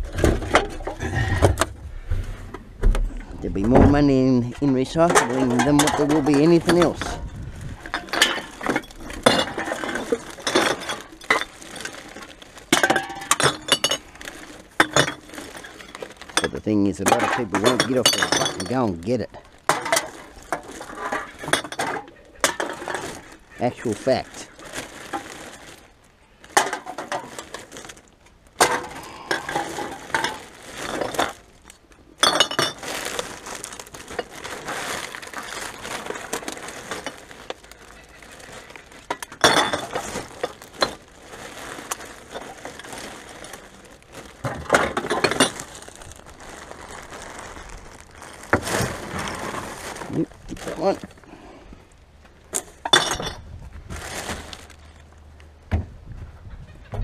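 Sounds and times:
cans and bottles clinking: 0:03.8 - 0:25.6, 0:26.5 - 0:27.9, 0:28.6 - 0:31.5, 0:32.2 - 0:46.1, 0:52.5 - 0:53.4.

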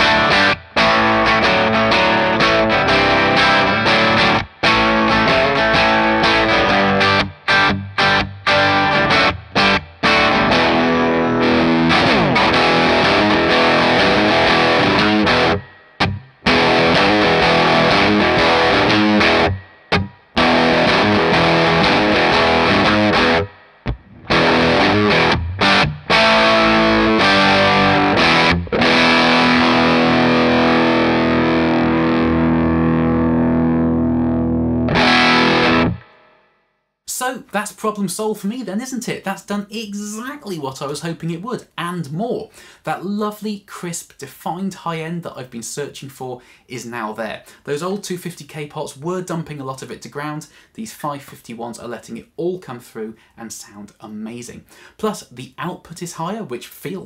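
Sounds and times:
distorted electric guitar chords: 0:00.0 - 0:36.6.

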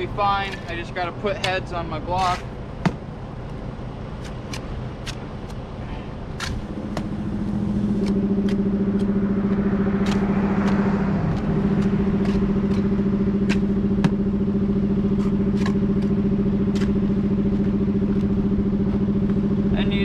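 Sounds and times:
trowel scraping mortar: 0:00.4 - 0:02.6.

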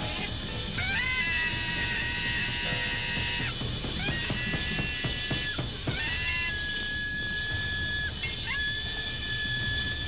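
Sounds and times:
busy drums and percussion: 0:00.0 - 0:06.8.

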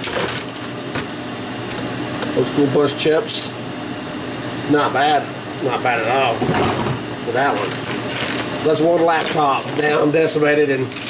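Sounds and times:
fan noise: 0:00.0 - 0:11.0
metal parts rattling: 0:07.6 - 0:08.5, 0:09.2 - 0:10.0.

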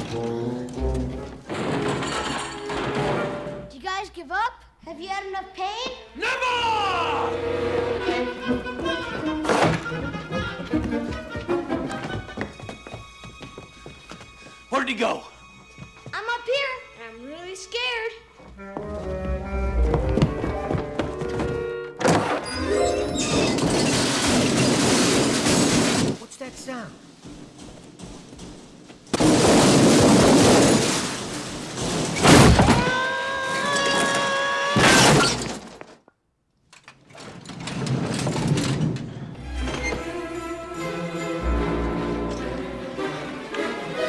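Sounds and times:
orchestral score: 0:00.0 - 0:02.0, 0:06.7 - 0:23.6, 0:39.3 - 0:44.0
metal tool chest crashing down stairs: 0:00.9 - 0:03.7, 0:22.0 - 0:26.3, 0:29.2 - 0:35.8, 0:37.1 - 0:40.0.

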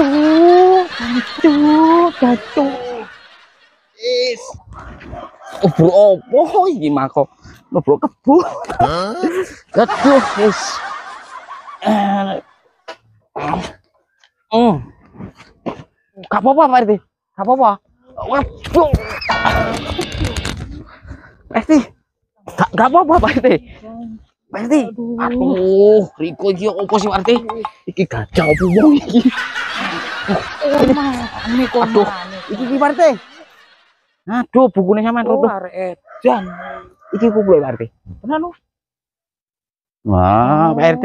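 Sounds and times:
men exclaiming: 0:00.0 - 0:03.4, 0:08.2 - 0:12.5, 0:28.3 - 0:33.6, 0:36.1 - 0:37.9
men snickering: 0:00.0 - 0:03.6, 0:08.3 - 0:12.4, 0:28.4 - 0:33.8
whistle-like descending tone: 0:28.4 - 0:28.9.

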